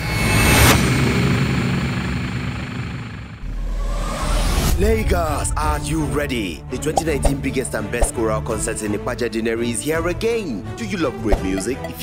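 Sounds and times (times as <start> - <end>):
low droning rumble: 1.1 - 6.7.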